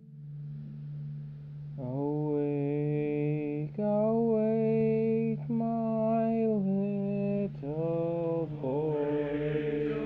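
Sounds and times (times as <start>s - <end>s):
voice holding chant-like note: 8.5s - 10.0s.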